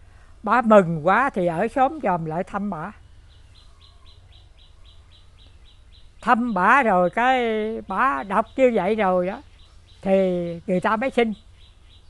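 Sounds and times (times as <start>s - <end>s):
small bird chirping: 1.4s - 12.0s.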